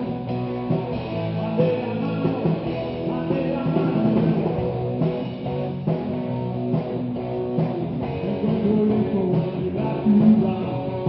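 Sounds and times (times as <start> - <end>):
drums: 0.0 - 11.0
electric bass: 0.0 - 11.0
electric guitars: 0.0 - 11.0.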